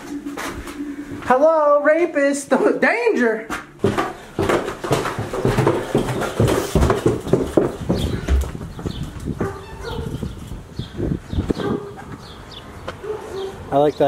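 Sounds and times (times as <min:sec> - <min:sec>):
footsteps on wooden stairs: 0:02.5 - 0:10.7.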